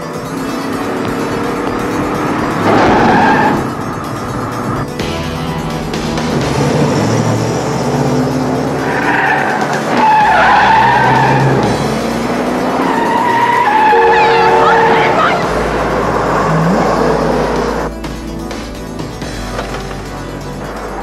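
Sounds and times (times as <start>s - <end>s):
car tires screeching: 0.0s - 17.9s
car engine noise: 0.0s - 21.0s.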